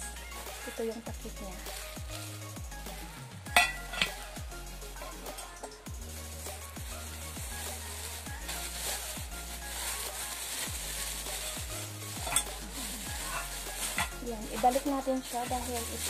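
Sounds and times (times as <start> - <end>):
music with deep bass beat: 0.0 - 16.0
plastic bag crinkling: 0.3 - 4.2, 6.1 - 16.0.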